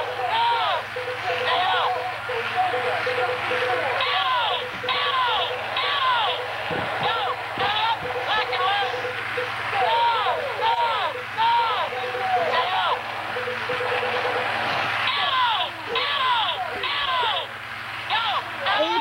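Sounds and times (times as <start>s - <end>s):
pulsing electronic tone: 0.0s - 15.1s
high beeping: 0.0s - 15.5s.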